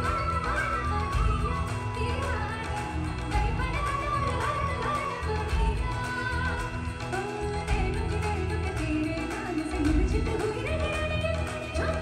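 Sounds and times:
band accompaniment with bass: 0.0 - 12.0
woman singing: 0.0 - 12.0.

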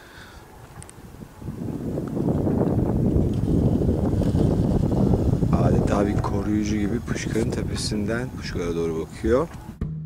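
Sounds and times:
wind buffeting microphone: 0.4 - 9.8.

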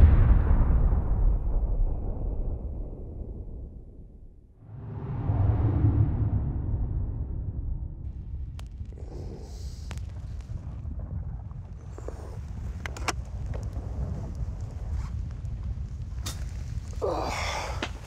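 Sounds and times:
low rumbling drone: 0.0 - 12.4.

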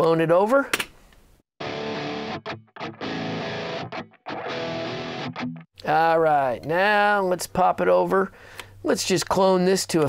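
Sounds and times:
distorted electric guitar riff: 1.6 - 5.6.

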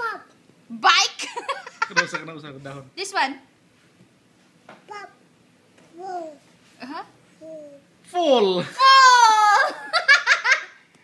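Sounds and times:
child giggling: 8.8 - 10.8.

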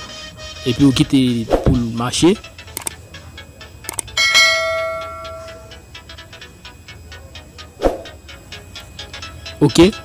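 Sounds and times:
notification bell chime: 4.2 - 5.7.

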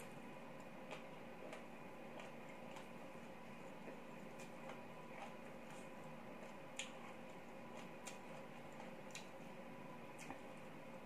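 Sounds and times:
steady low hum: 0.0 - 11.0
chewing and picking clicks: 0.6 - 9.4, 10.2 - 10.5.

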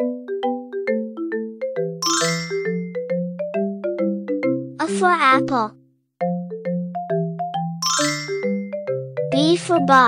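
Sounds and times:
mallet percussion melody: 0.0 - 5.6, 6.2 - 10.0.

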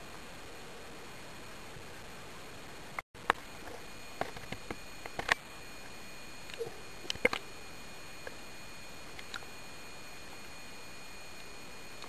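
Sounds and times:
sharp underwater clicks: 6.4 - 7.5, 9.1 - 9.6.

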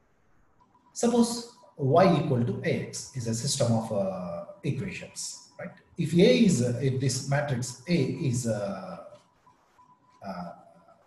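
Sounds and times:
man saying a drawn-out vowel: 1.0 - 5.3, 6.0 - 9.0, 10.3 - 10.5.

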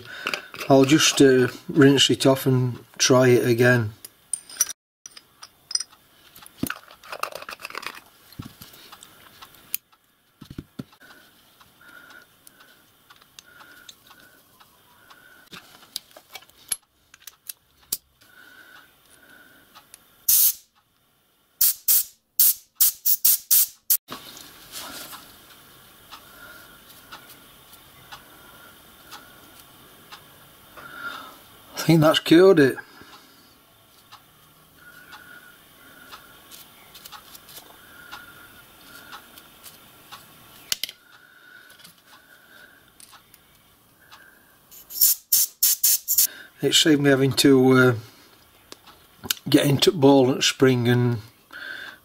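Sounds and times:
light clinks and handling: 4.3 - 6.0
whistle valve hissing: 20.3 - 20.6, 44.7 - 46.3.

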